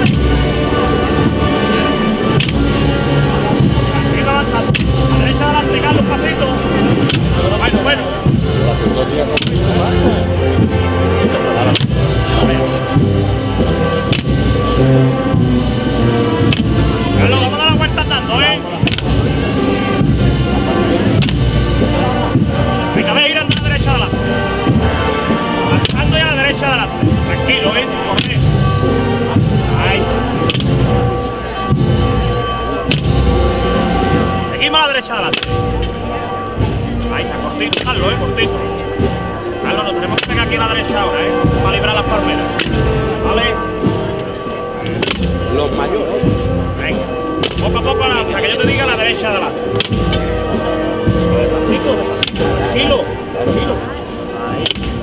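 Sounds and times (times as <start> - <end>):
bass drum strokes: 0.0 - 55.0
wind band playing a march: 0.0 - 55.0.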